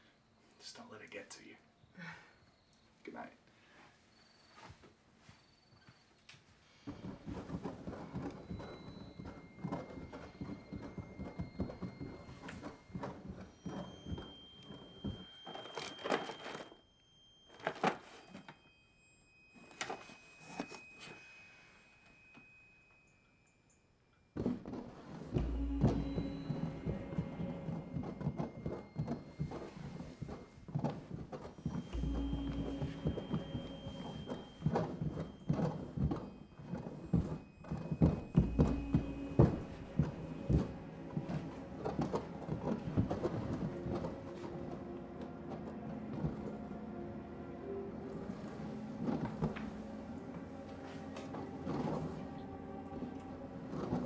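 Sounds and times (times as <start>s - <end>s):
knocks and clicks: 24.4s - 46.9s
held tones: 24.7s - 54.0s
tense horror music: 25.3s - 30.6s, 31.7s - 54.0s.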